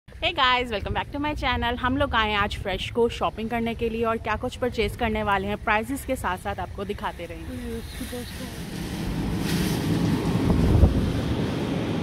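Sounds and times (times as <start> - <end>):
wind buffeting microphone: 6.2 - 12.0.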